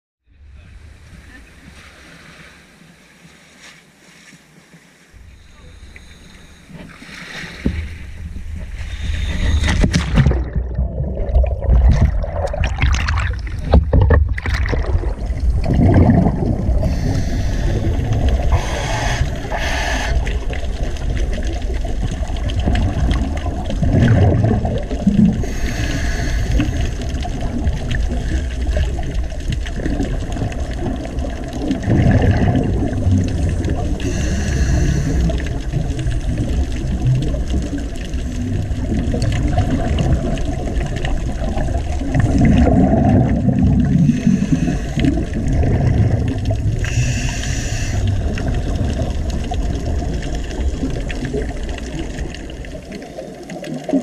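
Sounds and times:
underwater rumble: 0.2 - 54.0
water sloshing and splashing: 1.0 - 19.5, 20.2 - 25.7, 26.3 - 47.3, 48.0 - 54.0
regulator bubbling: 9.4 - 54.0.

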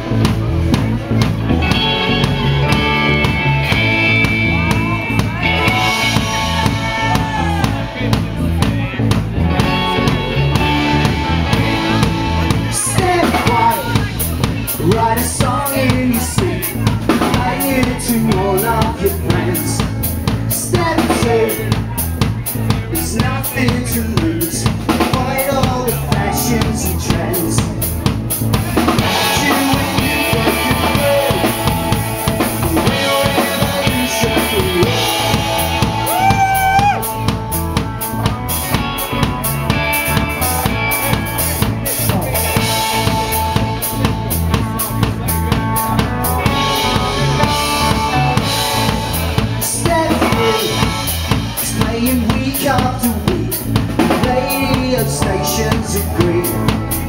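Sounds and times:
bass guitar: 0.0 - 57.0
drum kit beat: 0.0 - 57.0
electric guitars: 0.0 - 57.0.

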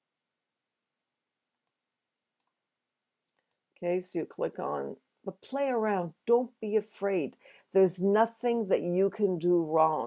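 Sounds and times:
computer mouse clicks: 3.2 - 3.6
woman speaking: 3.8 - 10.0.

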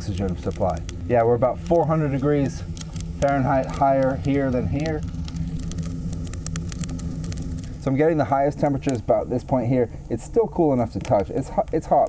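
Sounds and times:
kindling crackling: 0.0 - 12.0
stove draft drone: 0.0 - 12.0.

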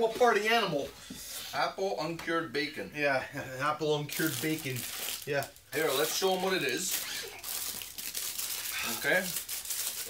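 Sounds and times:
snack packet crinkling: 4.1 - 10.0.

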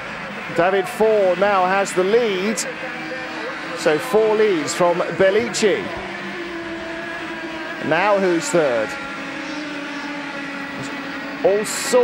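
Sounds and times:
kart engine at high revs: 0.0 - 12.0
commentary: 0.4 - 9.4, 10.6 - 12.0.

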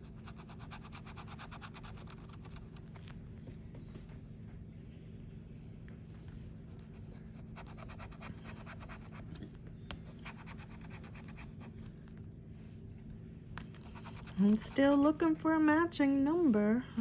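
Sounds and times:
scratching lottery ticket: 0.0 - 3.2.

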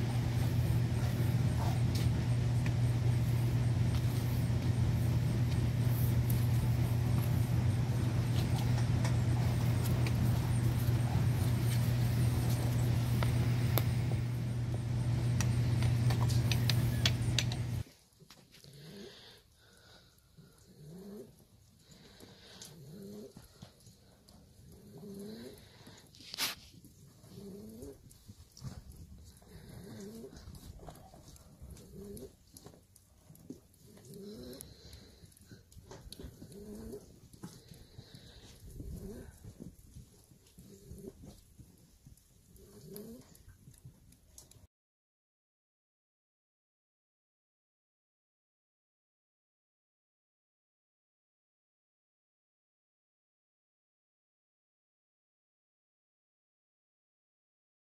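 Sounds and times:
loud steady low hum: 0.0 - 17.8
pigeons cooing: 0.1 - 17.8, 22.6 - 23.6, 24.6 - 25.9, 27.2 - 28.2, 29.4 - 30.7, 31.4 - 32.4, 33.8 - 35.0, 36.0 - 39.6, 40.6 - 41.4, 42.6 - 43.4
scattered clicks: 15.3 - 17.8.

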